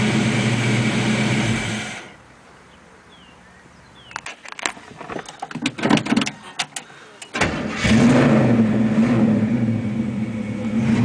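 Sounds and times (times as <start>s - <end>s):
car engine idling: 0.0s - 2.2s, 6.3s - 11.0s.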